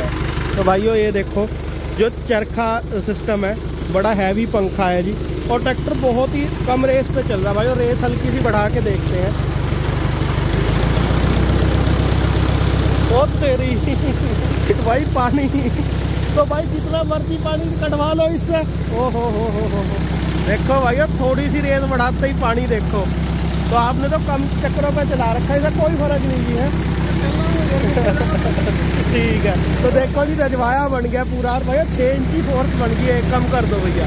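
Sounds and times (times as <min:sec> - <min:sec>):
tractor engine running: 0:00.0 - 0:34.0
water gushing from pipe: 0:00.1 - 0:34.0.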